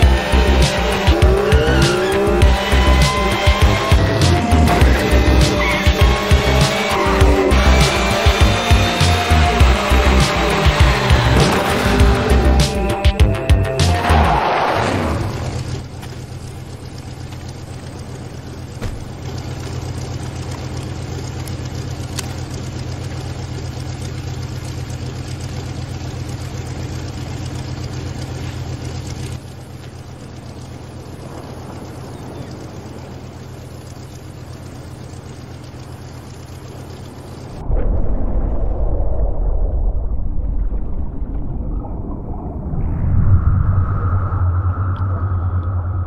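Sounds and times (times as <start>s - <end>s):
car engine idling: 0.0s - 37.7s
deep muffled rumble: 8.5s - 13.5s, 36.9s - 46.0s.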